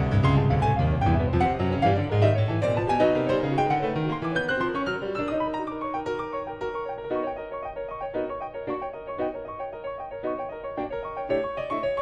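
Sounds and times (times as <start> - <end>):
pianos improvising latin style: 0.0 - 12.0.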